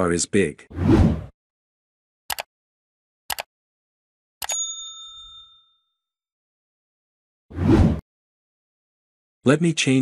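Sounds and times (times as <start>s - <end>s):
notification bell ding: 4.4s - 5.9s.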